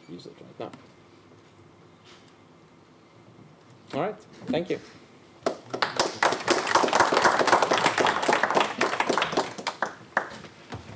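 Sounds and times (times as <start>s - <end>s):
audience applauding: 5.4s - 10.4s.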